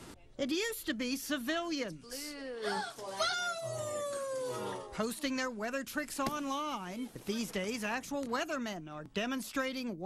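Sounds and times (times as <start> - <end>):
person crying out in amazement: 2.6 - 4.9.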